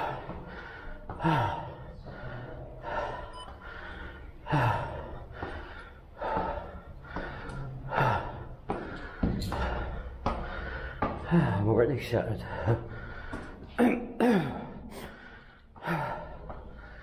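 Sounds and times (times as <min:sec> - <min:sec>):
man breathing hard: 0:00.0 - 0:17.0.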